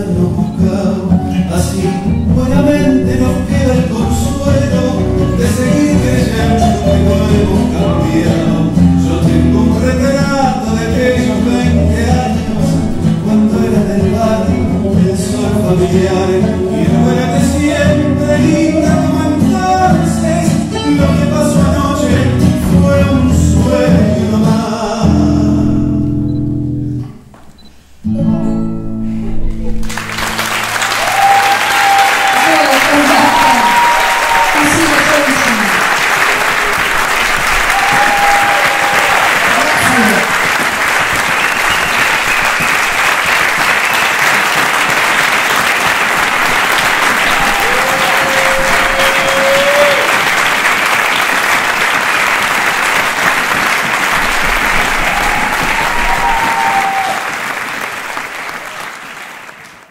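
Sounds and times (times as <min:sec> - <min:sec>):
large audience applauding: 0:29.8 - 0:59.9
shouts and whoops: 0:30.8 - 0:35.7, 0:37.6 - 0:40.2, 0:47.3 - 0:50.2, 0:54.8 - 0:57.4.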